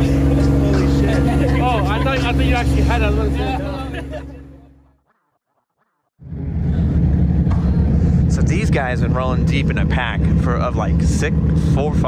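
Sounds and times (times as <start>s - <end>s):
car engines idling: 0.0s - 4.9s, 6.2s - 12.0s.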